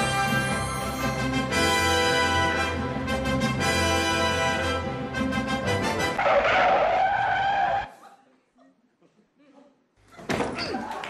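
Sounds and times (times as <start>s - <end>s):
music: 0.0s - 6.2s.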